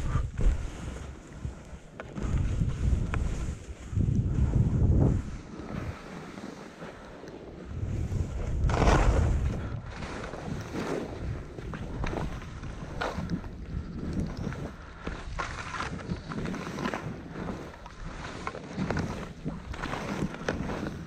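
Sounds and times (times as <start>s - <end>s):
wind buffeting microphone: 0.0s - 1.6s, 2.2s - 6.0s, 7.5s - 21.0s
skis hissing over snow: 2.3s - 13.4s, 14.3s - 21.0s.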